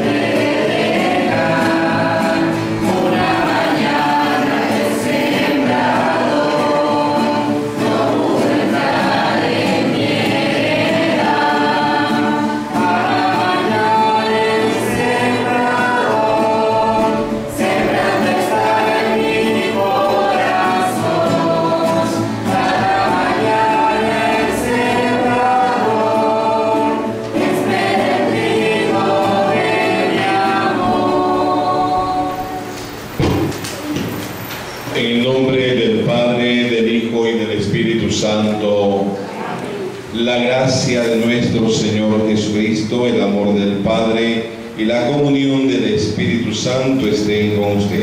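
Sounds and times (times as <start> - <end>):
group singing a hymn: 0.0 - 48.0.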